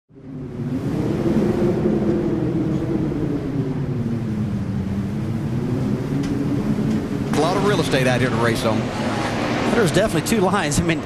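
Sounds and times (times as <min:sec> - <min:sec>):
race car engines droning: 0:00.1 - 0:11.0.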